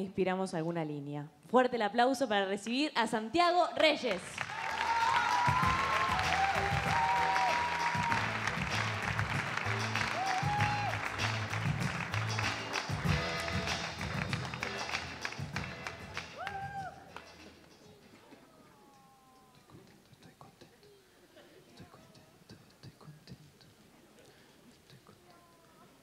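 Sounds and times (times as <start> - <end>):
audience applauding: 4.1 - 17.5
walk-on music: 4.9 - 18.3.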